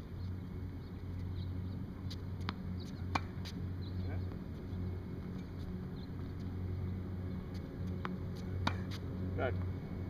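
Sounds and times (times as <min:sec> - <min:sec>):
tennis racquet hitting ball: 0:02.1 - 0:03.6, 0:07.9 - 0:09.1.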